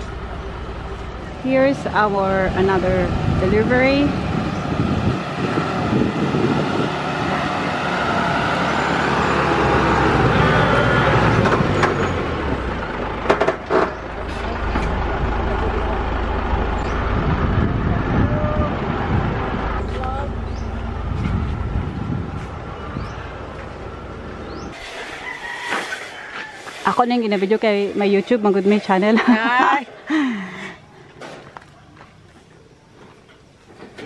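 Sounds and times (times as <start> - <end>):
truck engine rumbling: 0.0 - 34.0.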